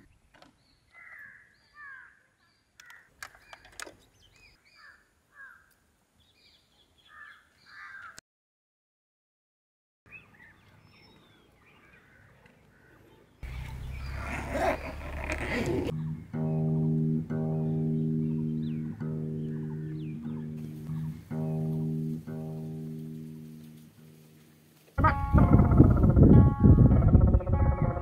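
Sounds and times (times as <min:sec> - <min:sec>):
faint bird calls: 0:00.8 - 0:05.8, 0:06.7 - 0:08.2, 0:10.1 - 0:16.6, 0:17.7 - 0:21.8
acoustic guitar chords ringing: 0:16.0 - 0:24.4, 0:25.0 - 0:28.0.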